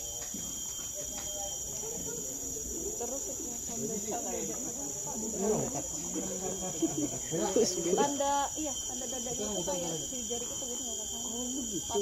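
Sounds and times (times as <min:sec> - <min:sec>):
high-pitched insect chorus: 0:00.0 - 0:12.0
people talking indistinctly: 0:00.8 - 0:12.0.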